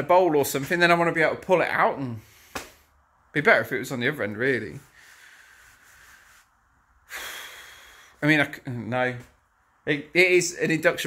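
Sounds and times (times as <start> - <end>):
faint hiss: 2.0 - 10.6.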